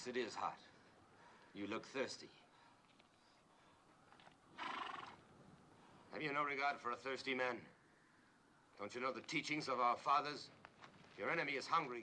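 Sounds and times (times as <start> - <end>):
horse whinnying: 4.5 - 5.2.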